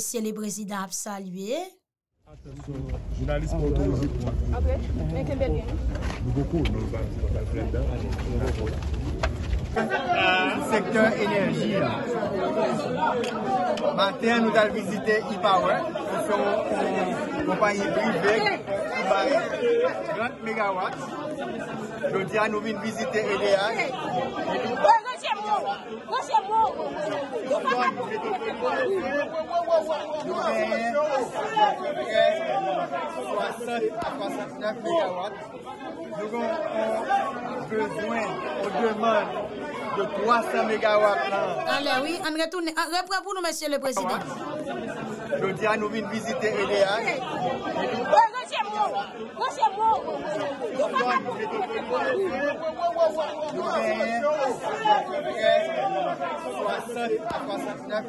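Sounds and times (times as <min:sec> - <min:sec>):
people chattering: 0:00.0 - 0:58.0.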